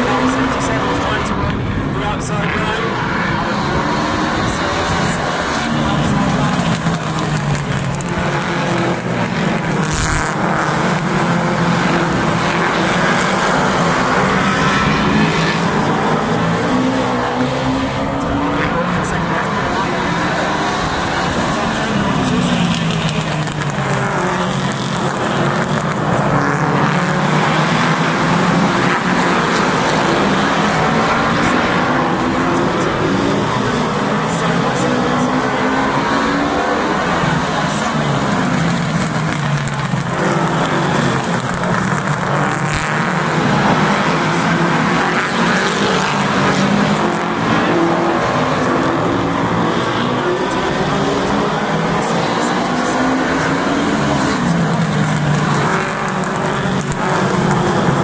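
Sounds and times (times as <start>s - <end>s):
race car engines: 0.0s - 58.0s.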